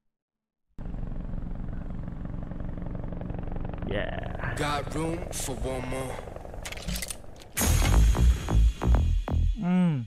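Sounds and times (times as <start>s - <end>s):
low rumbling drone: 0.8s - 10.0s.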